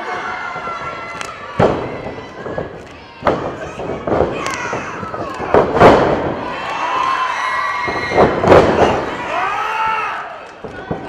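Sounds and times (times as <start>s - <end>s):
crowd shouting and cheering: 0.0s - 11.0s
wrestling slaps and thuds: 0.5s - 6.5s, 7.8s - 9.2s.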